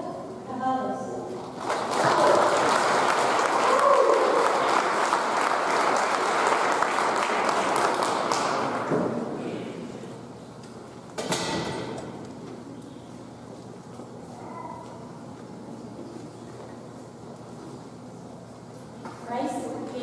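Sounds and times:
audience applause: 1.5s - 8.9s.

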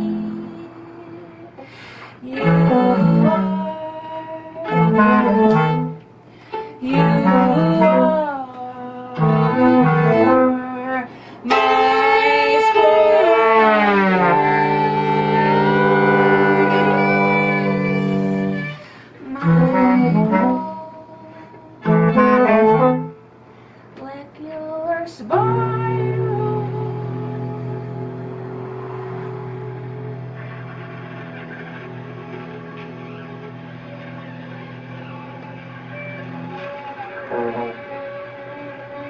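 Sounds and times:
bass clarinet: 2.2s - 8.4s, 9.1s - 23.3s, 25.3s - 39.0s
trombone: 4.6s - 6.0s, 11.5s - 18.8s, 19.4s - 20.8s, 21.8s - 23.2s, 25.4s - 38.8s.

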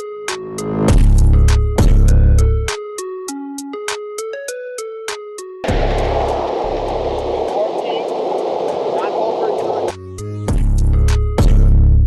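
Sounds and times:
wind noise on microphone: 5.6s - 10.0s
deep rumble: 5.7s - 9.9s.

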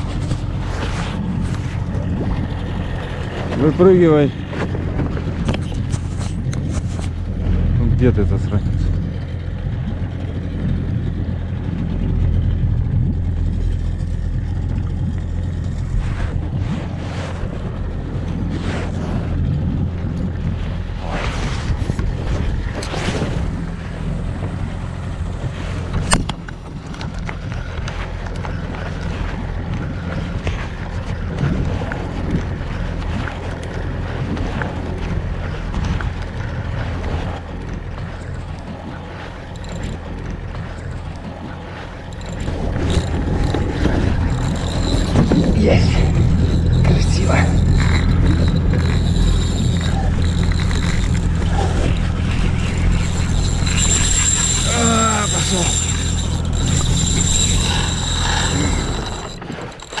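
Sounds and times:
steady low hum: 0.0s - 60.0s
wind and water noise: 0.0s - 60.0s
spinning reel whirring: 30.8s - 60.0s.

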